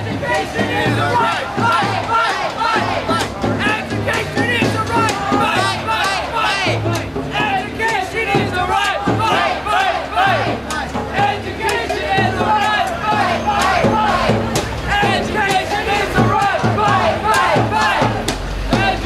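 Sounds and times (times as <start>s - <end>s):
crowd chanting and shouting: 0.0s - 19.0s
music playing: 0.0s - 19.0s.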